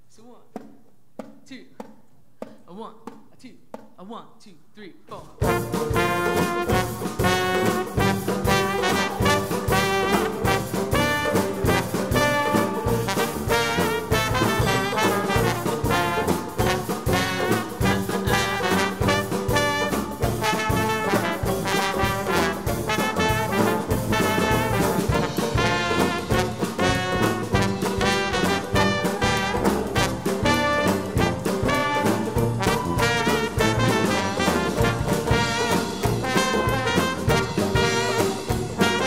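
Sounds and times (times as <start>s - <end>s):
jazz band playing swing: 5.4s - 39.0s.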